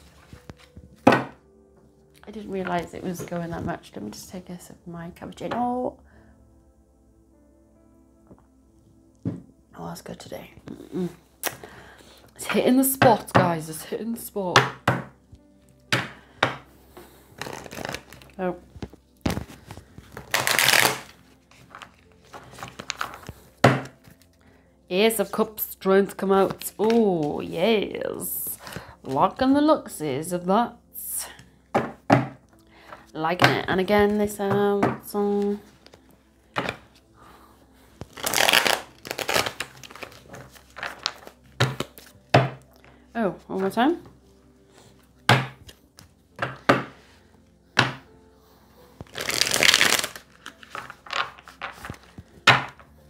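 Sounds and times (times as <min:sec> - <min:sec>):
cards rustling while shuffled: 0:17.3 - 0:24.4, 0:38.0 - 0:42.6, 0:49.0 - 0:52.8
cards tapping: 0:38.0 - 0:42.6.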